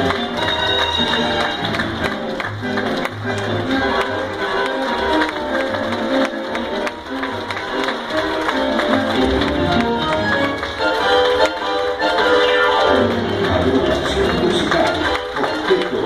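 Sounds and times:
tango orchestra with strings: 0.0 - 16.0.

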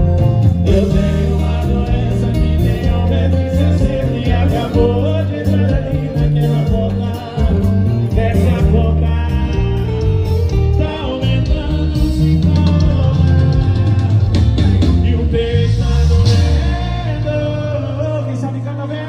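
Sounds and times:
live band through sound system: 0.0 - 19.0
two people singing: 0.0 - 19.0.

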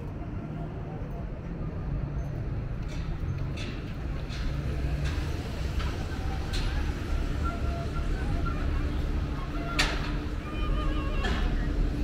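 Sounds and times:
city traffic rumble: 0.0 - 12.0
passers-by talking: 4.7 - 12.0.

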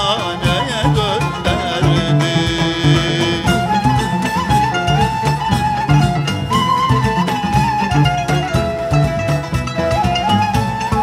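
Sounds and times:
hand drum beat: 0.0 - 11.0
plucked strings: 0.0 - 11.0
sliding melody line: 0.0 - 11.0.

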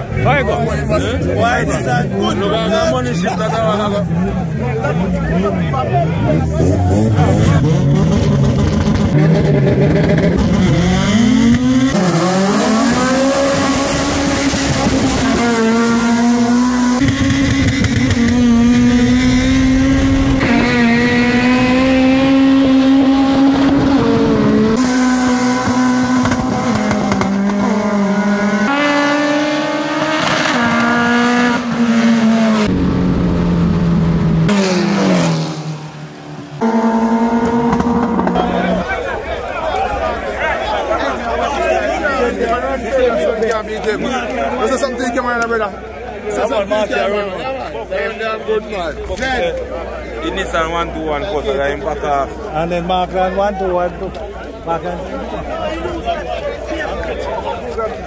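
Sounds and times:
race car engines at high revs: 1.3 - 45.8.

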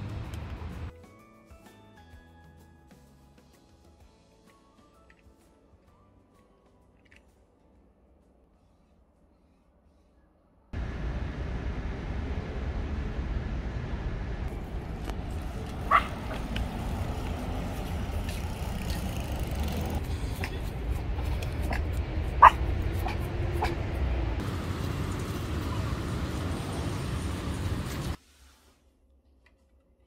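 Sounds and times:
low background rumble: 10.8 - 28.2
small dog yipping: 15.8 - 16.4, 21.6 - 23.8.

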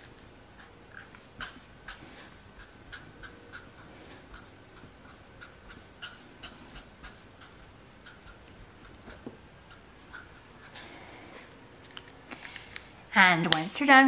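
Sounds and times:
marker scratching on paper: 1.4 - 10.8.

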